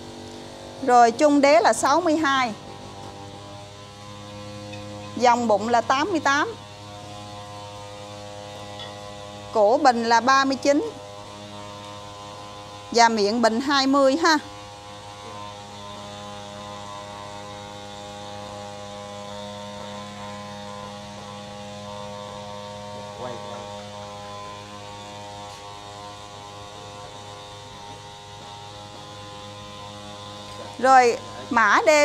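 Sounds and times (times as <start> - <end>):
electrical hum: 0.0 - 32.0.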